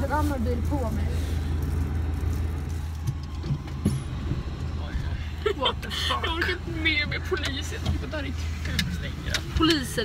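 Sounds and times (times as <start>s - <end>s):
car engine humming inside cabin: 0.0s - 10.0s.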